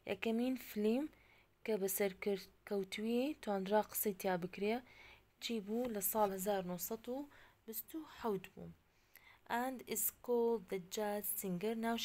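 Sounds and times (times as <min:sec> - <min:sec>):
woman speaking softly: 0:05.4 - 0:08.8, 0:09.5 - 0:12.0.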